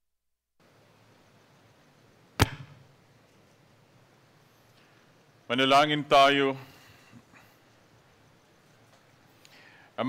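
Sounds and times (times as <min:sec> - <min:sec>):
faint steady hiss: 0:00.6 - 0:10.0.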